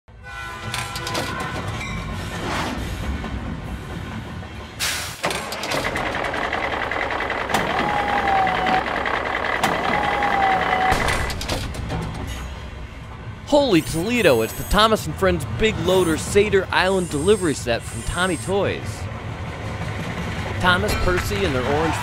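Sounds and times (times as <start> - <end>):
plastic track clatter: 0.6 - 1.8, 5.2 - 12.4
toy train motor whine: 7.5 - 9.0, 9.6 - 10.9, 13.8 - 14.9.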